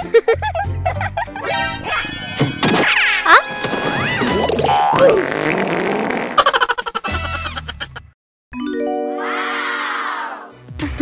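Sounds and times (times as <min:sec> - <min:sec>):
cartoon music: 0:01.4 - 0:05.2, 0:08.6 - 0:10.6
comic sound effects: 0:01.4 - 0:05.3.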